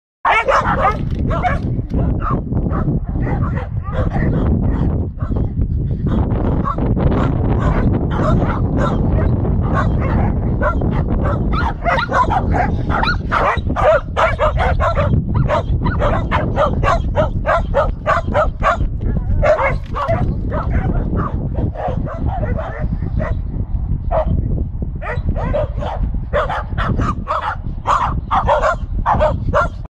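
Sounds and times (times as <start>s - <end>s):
dogs barking and yipping: 0.3s - 23.5s, 24.1s - 24.4s, 25.0s - 29.9s
low rumble: 0.6s - 28.2s.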